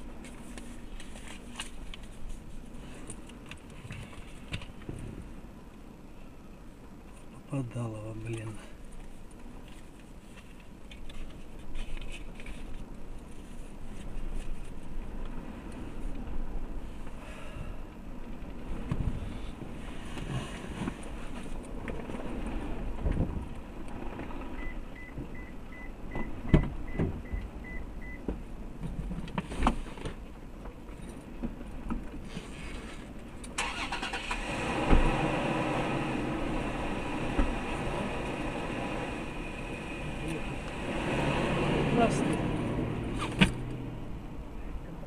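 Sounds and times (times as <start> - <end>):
traffic noise: 0.0 - 45.0
vehicle passing close by: 33.7 - 44.1.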